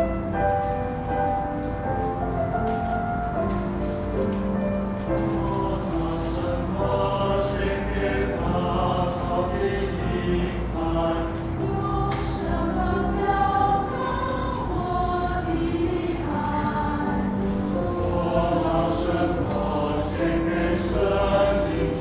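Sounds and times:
mixed choir singing a hymn: 0:05.0 - 0:22.0.

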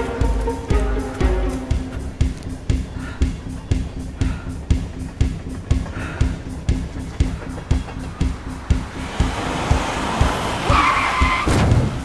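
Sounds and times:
car engine: 0:00.0 - 0:12.0
orchestral music with steady pulse: 0:00.0 - 0:12.0
tyre screech under braking: 0:09.4 - 0:12.0
thump: 0:11.4 - 0:12.0.

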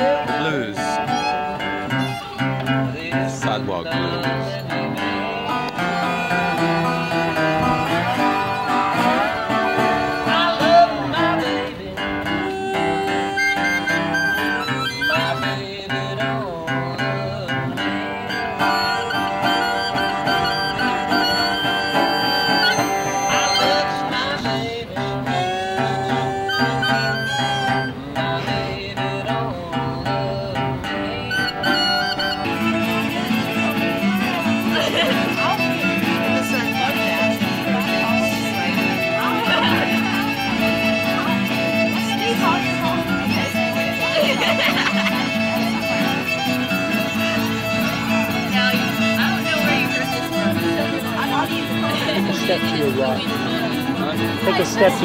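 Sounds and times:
acoustic guitar: 0:00.0 - 0:55.0
fiddle: 0:00.0 - 0:55.0
harmonica: 0:00.0 - 0:55.0.

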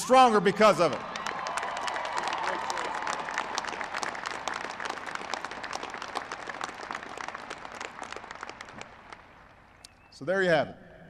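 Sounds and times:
large crowd applauding: 0:00.1 - 0:09.6.

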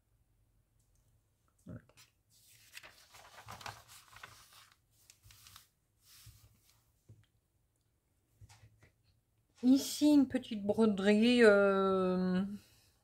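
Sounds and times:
magazine pages rustling: 0:02.0 - 0:06.8.

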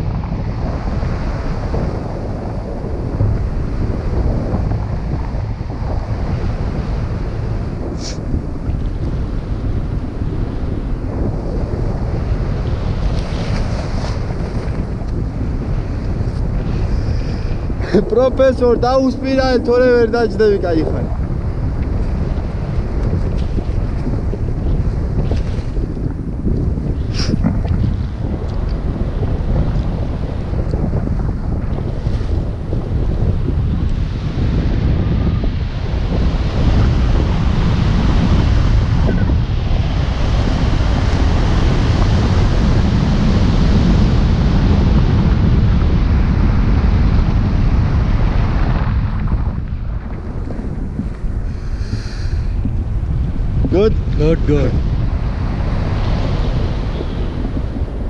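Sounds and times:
wind buffeting microphone: 0:00.0 - 0:58.0.

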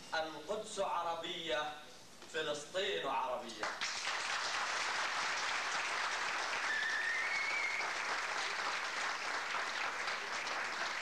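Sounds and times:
audience applauding: 0:03.6 - 0:11.0
high whistle: 0:06.6 - 0:08.0.

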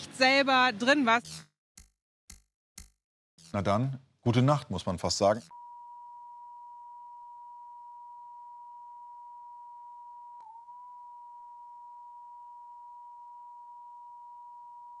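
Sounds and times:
sine test tone: 0:05.5 - 0:15.0.

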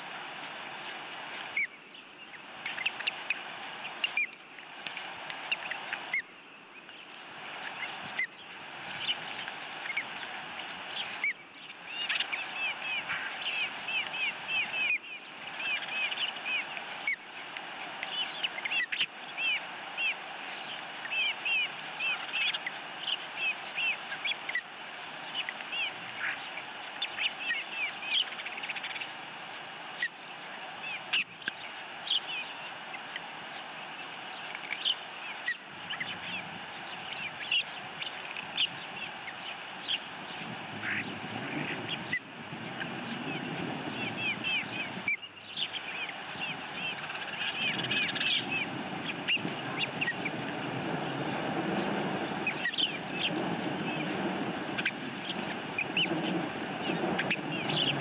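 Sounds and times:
steady outdoor hiss: 0:00.0 - 0:58.0
ospreys chirping: 0:01.5 - 0:58.0.

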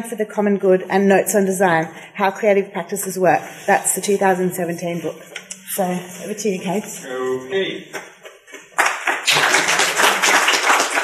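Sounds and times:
audience applauding: 0:08.7 - 0:11.0.

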